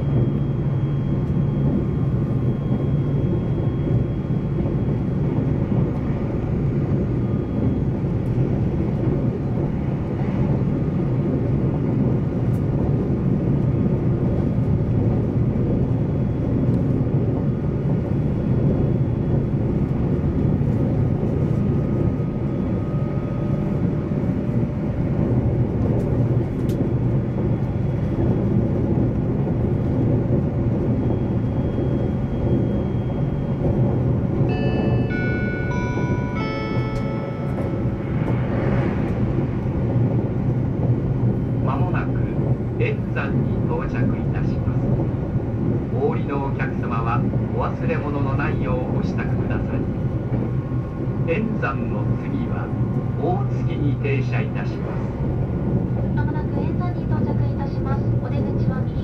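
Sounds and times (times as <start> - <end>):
electric train rumble and hum: 0.0 - 59.0.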